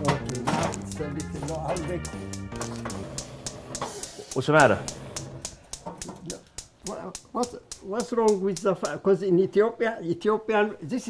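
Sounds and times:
spark igniter clicking rapidly: 0:00.0 - 0:09.1.

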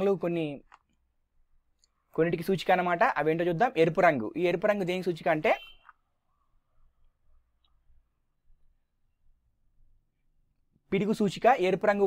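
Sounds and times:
man speaking: 0:00.0 - 0:00.7, 0:02.1 - 0:05.8, 0:10.9 - 0:12.0.

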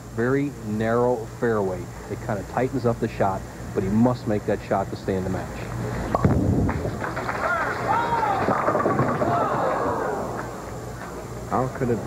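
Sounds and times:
bowling ball crashing into pins: 0:06.2 - 0:10.5
spectators' voices: 0:07.0 - 0:11.8.

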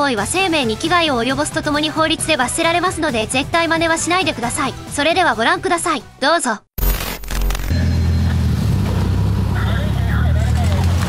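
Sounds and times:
car engines idling: 0:07.8 - 0:11.0.

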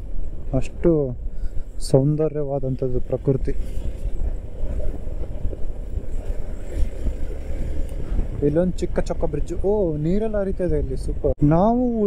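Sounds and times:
wind on microphone: 0:00.0 - 0:11.5.

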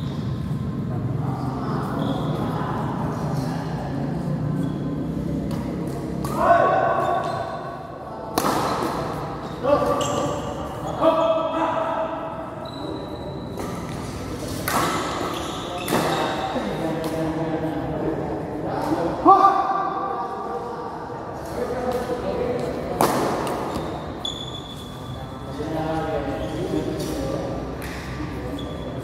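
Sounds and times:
players' voices and calls: 0:00.0 - 0:29.0
rackets smacking shuttlecock: 0:05.4 - 0:06.5, 0:08.3 - 0:10.3, 0:13.6 - 0:17.3, 0:21.8 - 0:24.2, 0:27.8 - 0:28.4.

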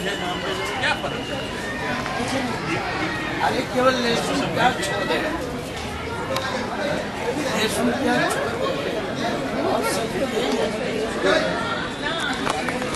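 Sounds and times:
overlapping chatter: 0:00.0 - 0:12.9.

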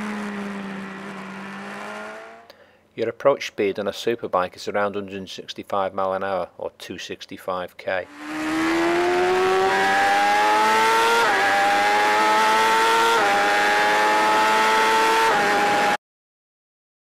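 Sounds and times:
motorcycle engine accelerating: 0:00.0 - 0:02.5, 0:08.1 - 0:16.0.

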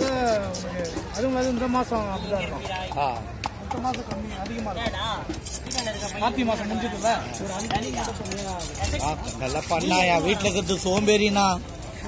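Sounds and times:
knife scraping fish scales: 0:05.3 - 0:10.8.

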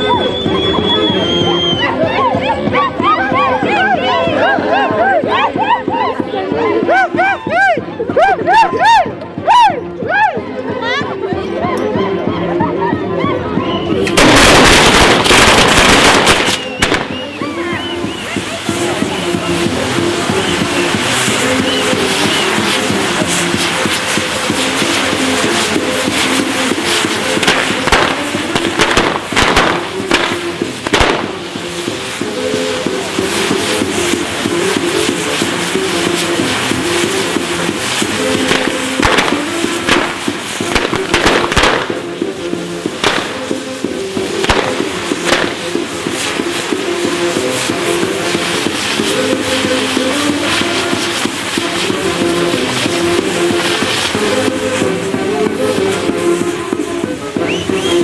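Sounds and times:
fireworks crackling: 0:00.0 - 0:58.0
music with held notes: 0:00.0 - 0:58.0
firecracker bangs: 0:14.0 - 0:58.0.

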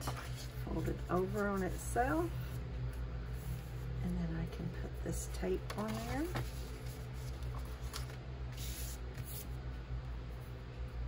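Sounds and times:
paper being handled: 0:05.7 - 0:09.5.

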